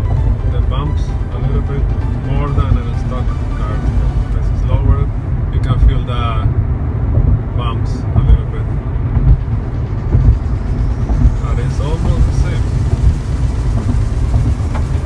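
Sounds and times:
car cabin road rumble: 0.0s - 15.0s.

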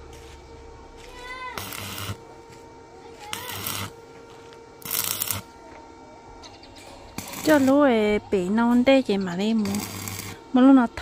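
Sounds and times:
arc welding crackling: 0.0s - 5.8s, 6.4s - 11.0s.

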